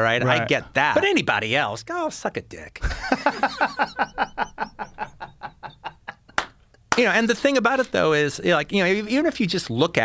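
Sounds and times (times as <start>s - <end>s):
man laughing: 2.8s - 6.4s.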